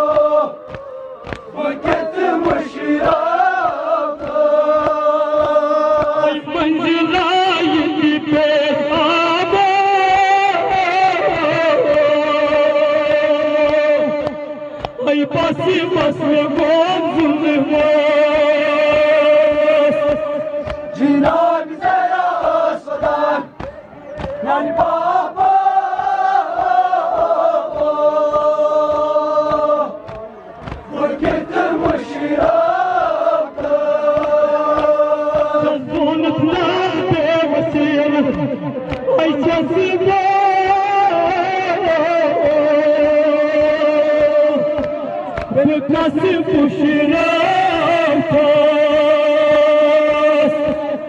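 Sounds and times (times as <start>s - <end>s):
men beating their chests: 0.0s - 50.9s
men chanting a mourning lament: 0.0s - 51.0s.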